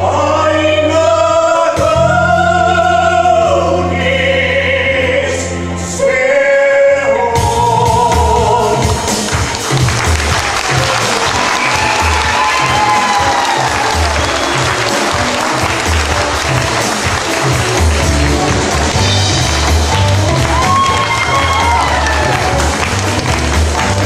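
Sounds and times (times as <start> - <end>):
band music with low beat: 0.0 - 4.6, 7.2 - 24.0
audience applauding: 9.1 - 24.0.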